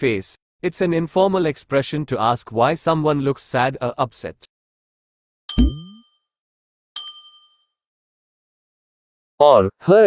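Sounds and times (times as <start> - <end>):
bell-like ding: 5.5 - 6.0, 7.0 - 7.7.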